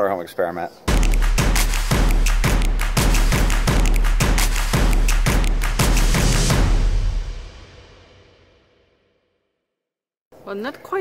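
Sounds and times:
upbeat theme music with heavy bass: 0:00.9 - 0:08.0.

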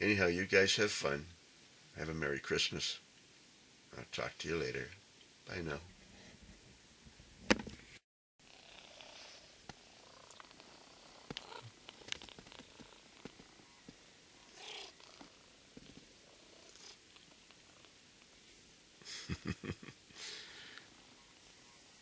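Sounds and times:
cat purring: 0:08.4 - 0:18.6.

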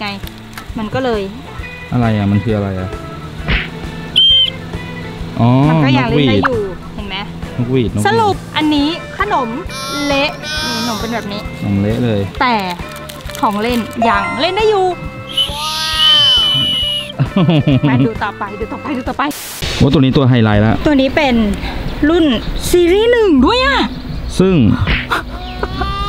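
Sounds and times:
shrill toy whistle toot: 0:09.7 - 0:11.2, 0:15.3 - 0:17.1.

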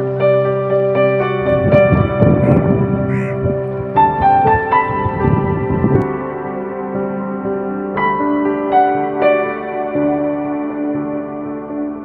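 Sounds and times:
instrumental background music: 0:00.0 - 0:12.0
crow-like caws: 0:02.3 - 0:05.2.

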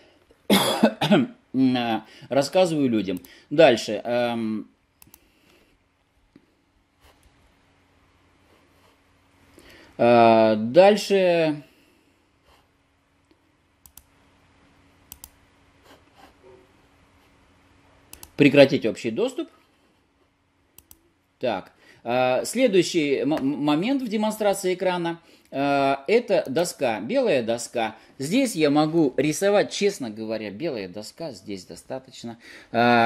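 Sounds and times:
low steady hum: 0:00.0 - 0:33.0
man coughing: 0:00.5 - 0:01.4
man speaking: 0:01.1 - 0:04.8, 0:10.0 - 0:11.7, 0:18.4 - 0:19.6, 0:21.4 - 0:33.0
computer mouse button clicks: 0:15.1 - 0:15.4.

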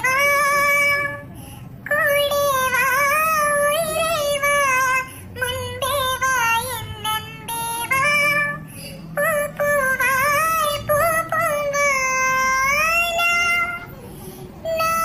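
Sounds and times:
high child-like voice singing: 0:00.0 - 0:15.0.

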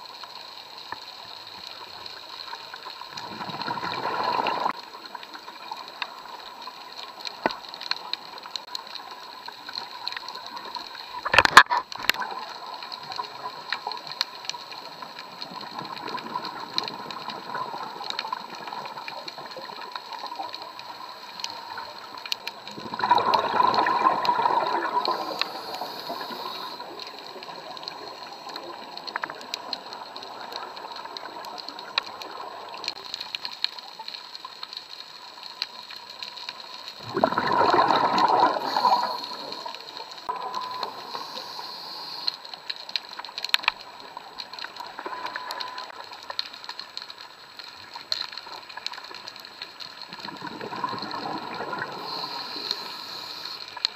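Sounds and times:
underwater hiss: 0:00.0 - 0:11.4, 0:12.2 - 0:33.3, 0:34.9 - 0:43.0, 0:47.9 - 0:53.9
diver's bubbles rushing up: 0:03.2 - 0:04.8, 0:22.7 - 0:26.5, 0:37.0 - 0:39.6, 0:50.1 - 0:52.2
small clicks: 0:04.7 - 0:37.0, 0:38.6 - 0:53.9.

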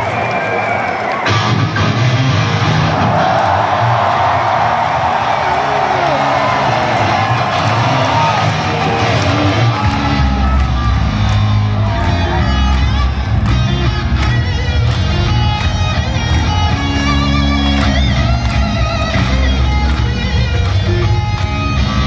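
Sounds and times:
crowd cheering and calling out: 0:00.0 - 0:22.0
live rock music: 0:01.2 - 0:04.0, 0:05.6 - 0:22.0
heavy low bass: 0:08.0 - 0:22.0.

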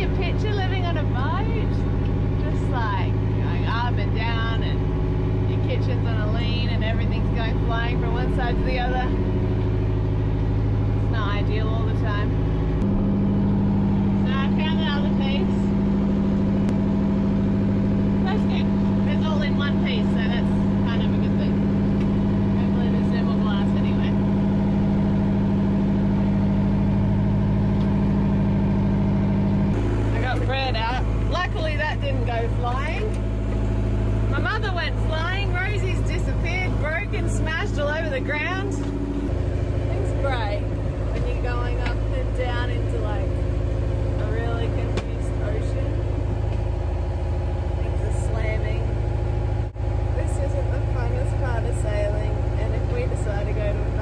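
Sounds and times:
low mechanical hum: 0:00.0 - 0:54.0
indistinct voices: 0:18.0 - 0:24.5, 0:29.7 - 0:43.4.

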